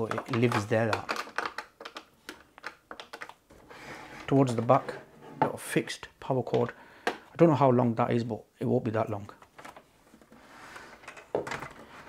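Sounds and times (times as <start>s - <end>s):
plastic scraping across tabletop: 3.6s - 5.6s, 10.2s - 12.0s.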